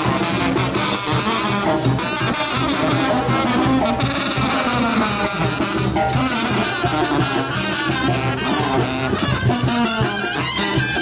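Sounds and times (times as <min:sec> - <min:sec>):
brass band with drums: 0:00.0 - 0:11.0.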